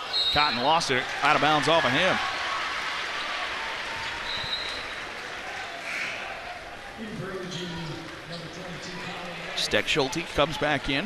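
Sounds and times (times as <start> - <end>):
crowd cheering: 0.0 - 11.0
crowd clapping: 1.4 - 5.8.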